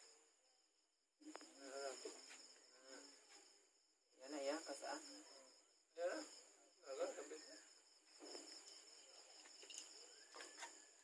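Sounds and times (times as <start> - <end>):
night insects trilling: 0.0 - 11.0.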